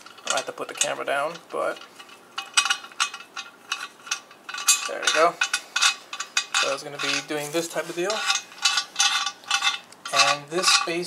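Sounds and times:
metallic thread clicks and scrapes: 0.0 - 11.0.

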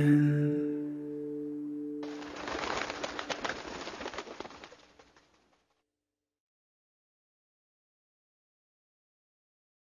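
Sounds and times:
rapid flapping of many wings: 2.0 - 5.8.

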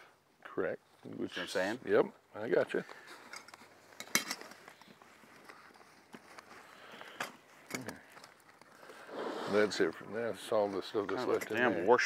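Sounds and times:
camping gear clicking and rustling: 0.8 - 12.0.

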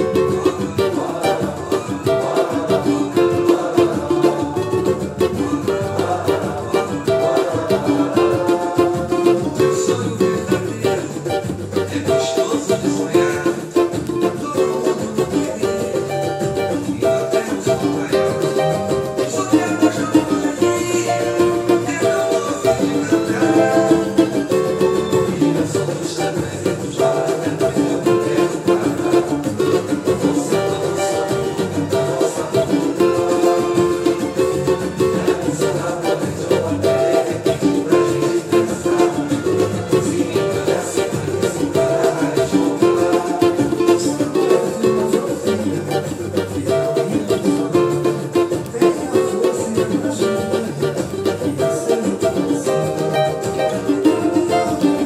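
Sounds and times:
cavaquinho strumming: 0.0 - 55.0.

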